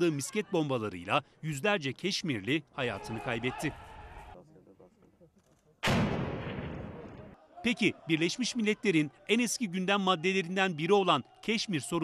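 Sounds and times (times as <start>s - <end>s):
explosive blast with echoing rumble: 5.8s - 7.1s.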